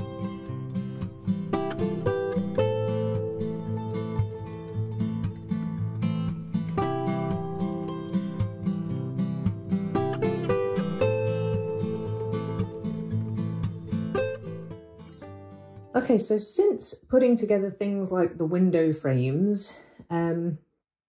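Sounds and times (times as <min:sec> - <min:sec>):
acoustic guitar music: 0:00.0 - 0:18.2.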